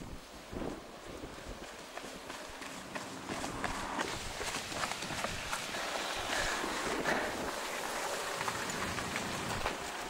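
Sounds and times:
steady hiss: 0:00.0 - 0:01.9, 0:04.0 - 0:10.0
running footsteps on tarmac: 0:00.8 - 0:10.0.

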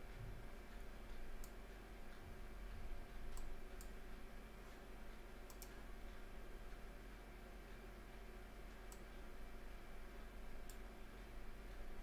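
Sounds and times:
faint low hum: 0:00.0 - 0:12.0
computer mouse clicks: 0:01.4 - 0:01.6, 0:03.3 - 0:04.0, 0:05.4 - 0:05.9, 0:08.7 - 0:09.1, 0:10.6 - 0:10.9.

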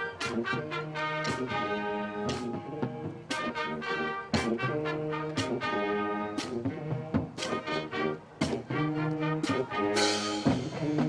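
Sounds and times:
brass section holding chords: 0:00.0 - 0:11.0.

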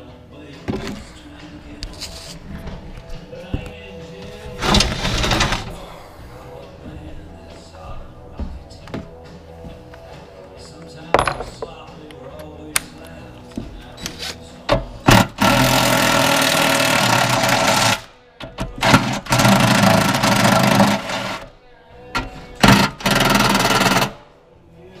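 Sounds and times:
knocks and clanks on metal: 0:11.2 - 0:11.7.

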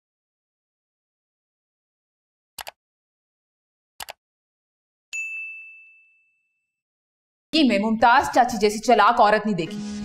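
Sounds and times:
bright bell ding: 0:05.2 - 0:06.6.

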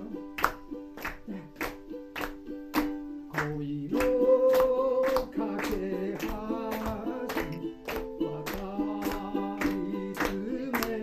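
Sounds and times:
man singing: 0:00.0 - 0:00.3, 0:03.2 - 0:11.0
hands clapping on the beat: 0:00.0 - 0:11.0
strummed ukulele: 0:00.0 - 0:11.0.

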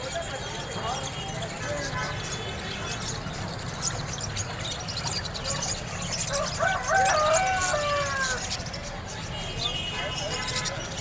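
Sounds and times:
birds murmuring: 0:00.0 - 0:11.0
rooster crowing: 0:06.3 - 0:08.5.

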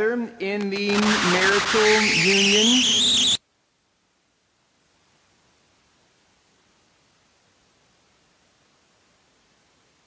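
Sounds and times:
high squeaky whine: 0:00.7 - 0:03.4.

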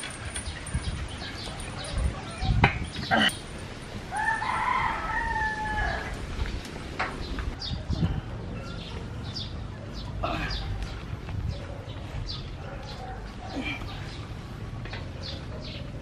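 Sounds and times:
rooster crowing: 0:04.1 - 0:06.2.

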